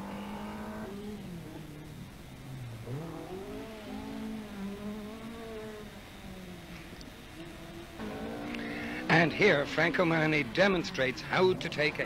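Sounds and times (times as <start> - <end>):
rally car engine revving: 0.0 - 12.0
second car engine: 0.0 - 12.0.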